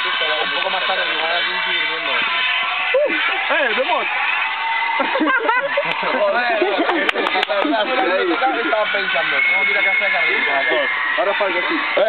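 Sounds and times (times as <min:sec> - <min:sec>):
young men talking and calling out: 0:00.0 - 0:12.0
high rising shout: 0:02.1 - 0:06.6, 0:07.9 - 0:12.0.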